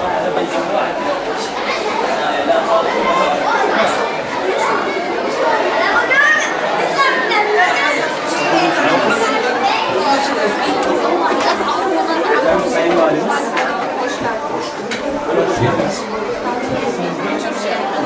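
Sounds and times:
many voices chattering: 0.0 - 18.0.

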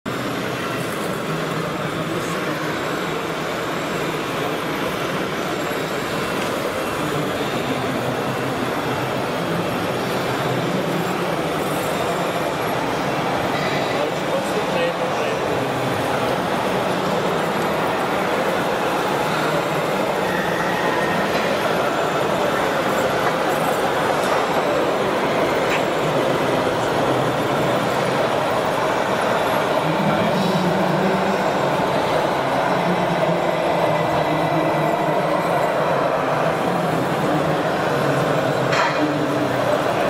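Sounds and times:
indistinct voices: 0.7 - 40.0.

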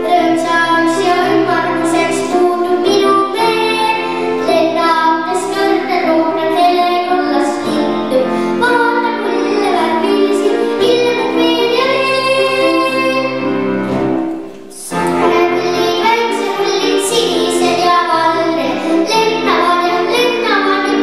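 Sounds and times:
girl singing into microphone: 0.0 - 13.6, 14.7 - 21.0
instrumental accompaniment: 0.0 - 21.0.

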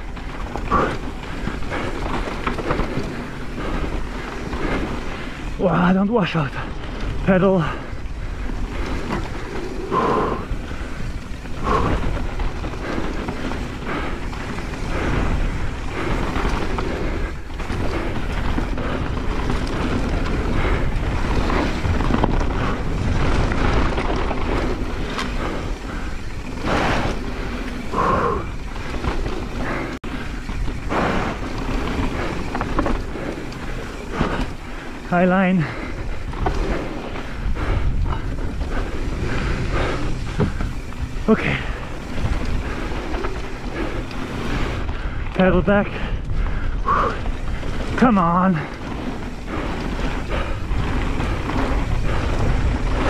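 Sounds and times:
bike tyres rolling on dirt: 0.0 - 53.0
wind buffeting microphone: 0.0 - 53.0
wind on microphone: 35.7 - 48.0, 48.6 - 53.0.

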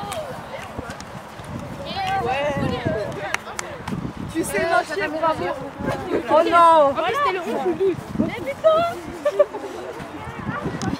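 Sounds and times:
girls talking and calling out: 0.0 - 10.9.

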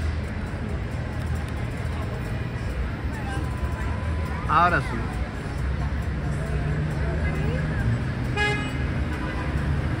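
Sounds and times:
street traffic rumble: 0.0 - 10.0
vehicle horn toot: 8.4 - 9.5.

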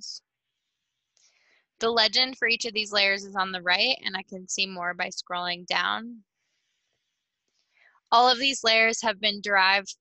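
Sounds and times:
person speaking: 1.8 - 6.2, 8.2 - 10.0.

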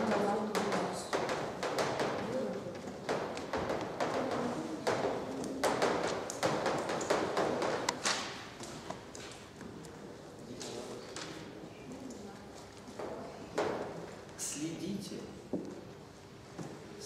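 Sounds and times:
chalk tapping on blackboard: 0.0 - 8.0.

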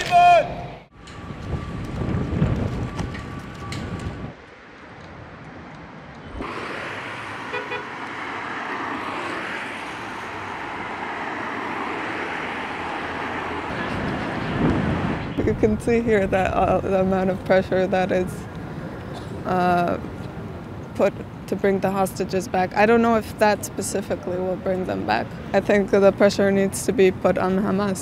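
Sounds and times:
city street traffic: 0.0 - 28.0
wind buffeting microphone: 0.9 - 6.5, 7.9 - 21.3.

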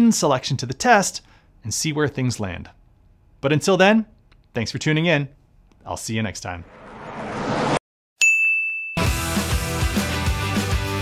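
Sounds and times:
bright ding: 8.2 - 9.2
music with steady beat: 9.0 - 11.0.

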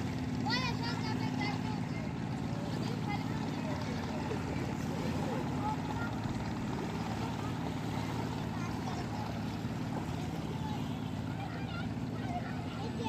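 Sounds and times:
faint voices: 0.0 - 13.0
low engine drone: 0.0 - 13.0.

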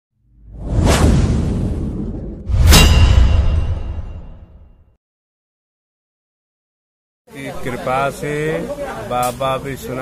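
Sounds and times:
whoosh sound effect: 0.4 - 4.7.

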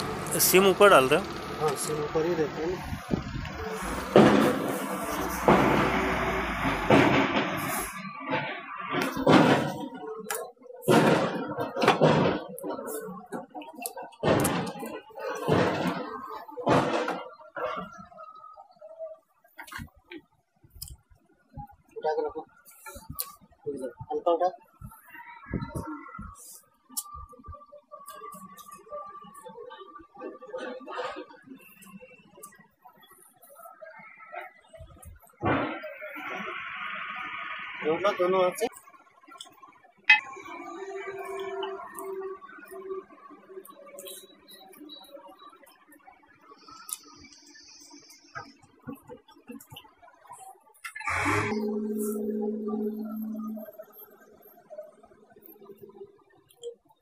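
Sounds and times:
men talking: 0.2 - 4.1
steady pitched hum: 51.1 - 56.0.

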